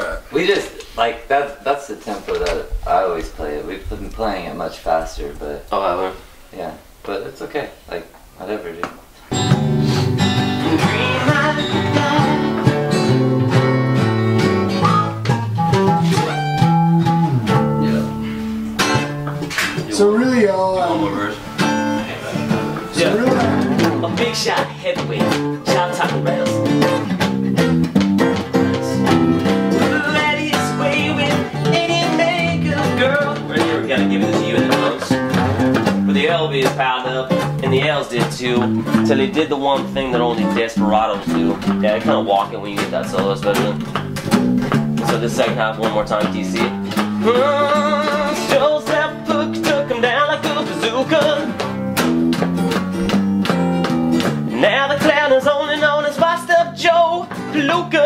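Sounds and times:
acoustic guitar strumming: 9.1s - 58.0s
bass guitar: 9.2s - 58.0s.

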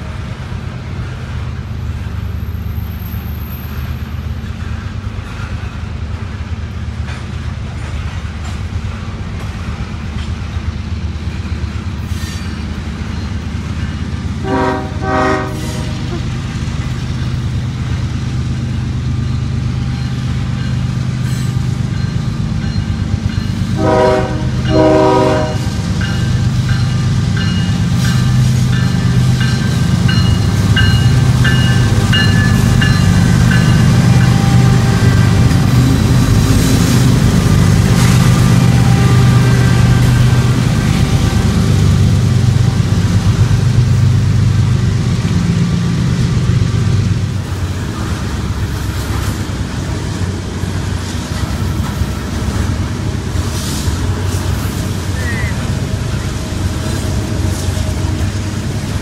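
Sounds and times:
diesel locomotive engines rumbling: 0.0s - 59.0s
train horn blasts: 14.4s - 16.3s, 23.7s - 25.8s, 33.2s - 42.9s.

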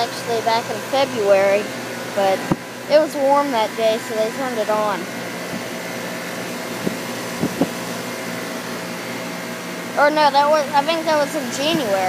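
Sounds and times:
compressor hum: 0.0s - 12.0s
condenser fan whoosh: 0.0s - 12.0s.

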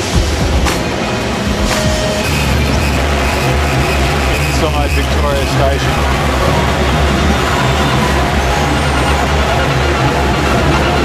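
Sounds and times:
crowd din in station: 0.0s - 11.0s
deep rumble: 0.0s - 11.0s.

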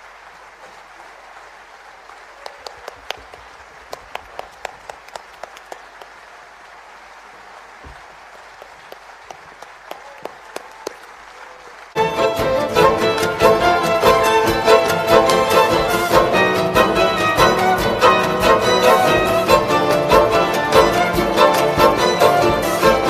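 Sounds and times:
audience applauding: 0.0s - 23.0s.

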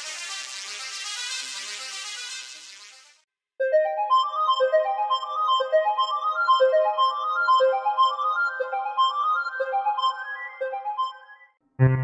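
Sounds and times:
synthesizer arpeggio: 3.6s - 12.0s.

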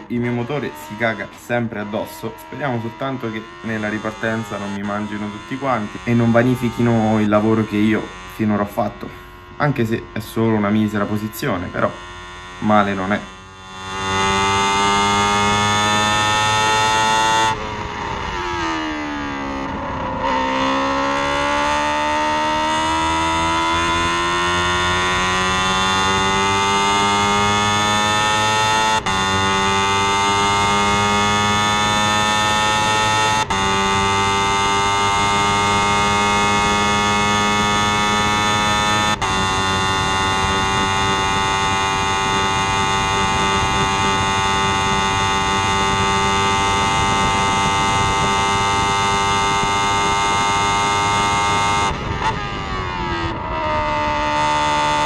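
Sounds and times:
race car engine accelerating: 0.0s - 55.0s.

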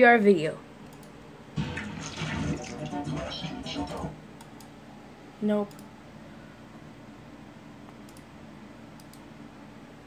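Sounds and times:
music and voice from speakers: 2.6s - 4.2s.

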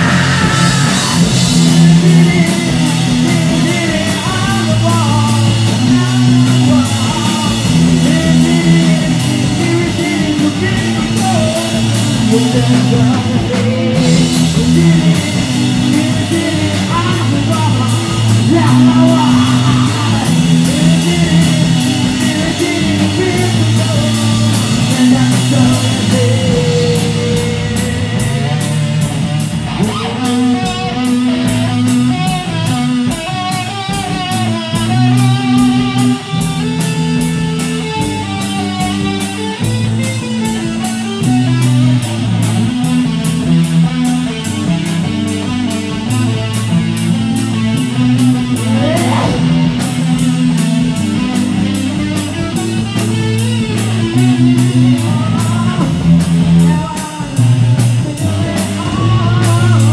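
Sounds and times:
bass guitar: 0.0s - 59.9s
drum kit steady beat: 0.0s - 59.9s
electric guitar: 0.0s - 59.9s.

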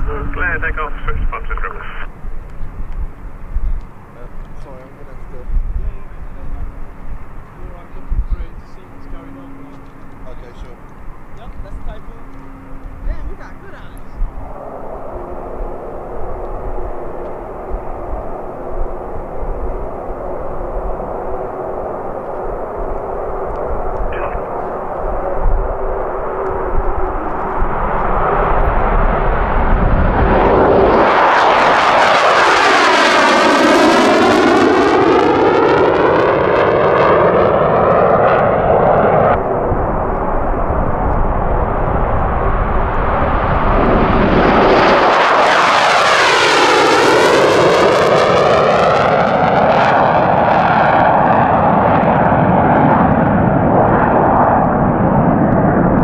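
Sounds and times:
fighter jets taking off: 0.0s - 56.0s.

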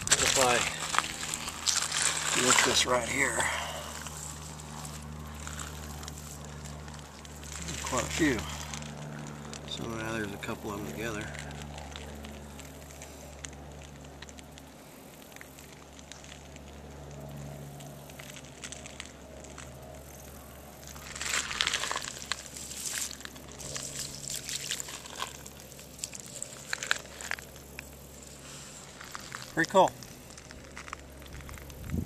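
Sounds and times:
crackling and rustling: 0.0s - 32.0s
steady low hum: 0.0s - 32.0s.

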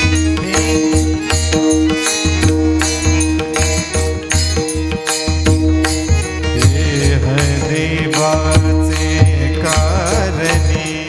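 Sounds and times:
man singing through microphone: 0.0s - 1.4s, 6.4s - 11.0s.

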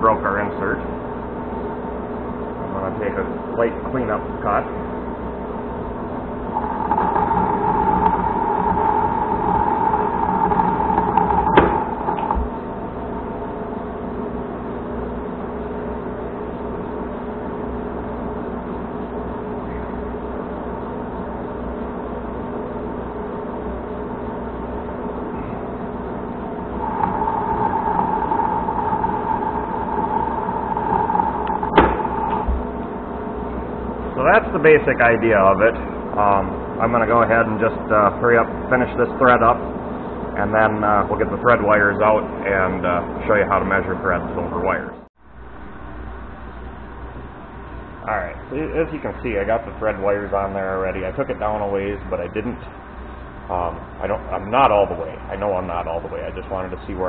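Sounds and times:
lathe humming: 4.2s - 17.3s, 21.0s - 43.2s
lathe cutting steel tone: 6.5s - 12.9s, 26.8s - 32.6s.

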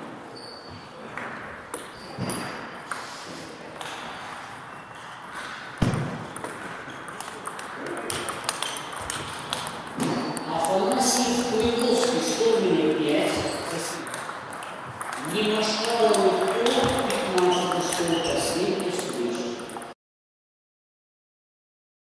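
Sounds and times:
table tennis ball clicking: 5.4s - 19.9s
loud thump: 5.8s - 6.3s.

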